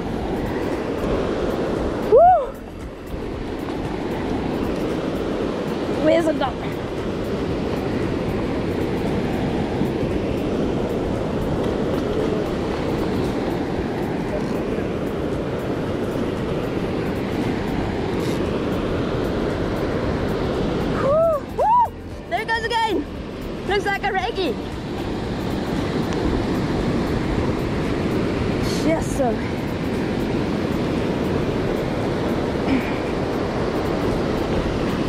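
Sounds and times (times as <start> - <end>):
surf breaking on beach: 0.0 - 22.0.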